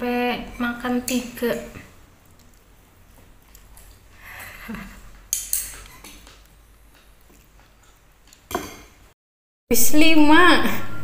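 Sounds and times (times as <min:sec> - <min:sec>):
tableware clinking: 0:08.5 - 0:09.0.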